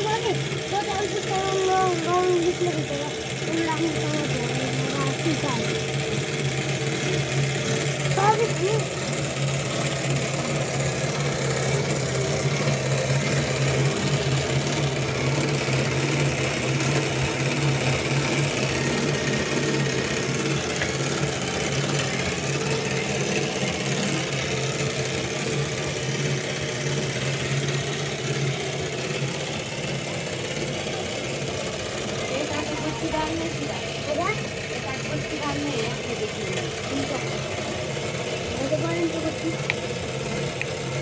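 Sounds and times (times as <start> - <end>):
motor humming: 0.0 - 41.0.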